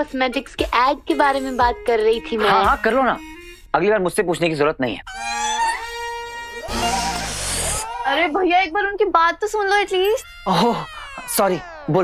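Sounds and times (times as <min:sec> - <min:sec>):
held musical tone: 0:05.1 - 0:08.0.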